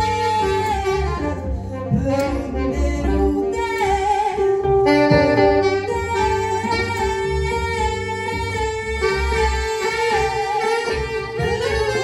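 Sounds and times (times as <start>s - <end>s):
drums: 0.0s - 12.0s
electric guitar: 0.0s - 12.0s
saxophone: 0.0s - 12.0s.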